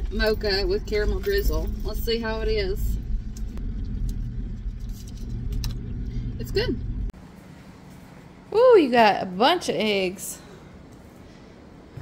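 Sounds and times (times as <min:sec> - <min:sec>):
car engine rumble inside cabin: 0:00.0 - 0:07.2.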